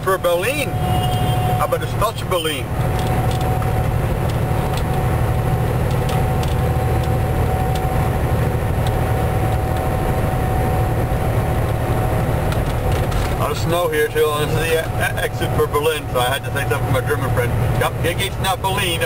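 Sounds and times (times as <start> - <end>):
truck engine drone: 0.0 - 19.0.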